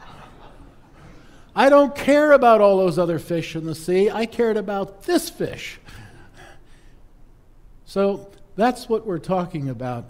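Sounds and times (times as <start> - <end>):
man talking: 1.6 - 6.0, 7.8 - 10.0.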